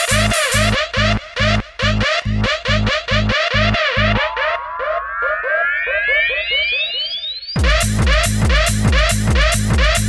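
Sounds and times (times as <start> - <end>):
pulsing synth note: 3.1 - 7.8
synth riser sweeping upward: 3.5 - 7.6.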